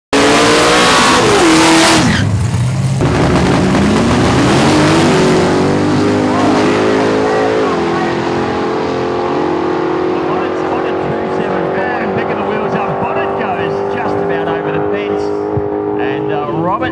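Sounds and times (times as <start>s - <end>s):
drag racing car engines revving: 0.1s - 16.9s.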